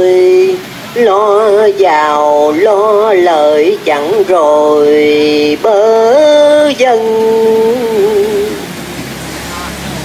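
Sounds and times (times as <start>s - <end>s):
person chanting: 0.0s - 8.6s
steady background noise: 0.0s - 10.0s.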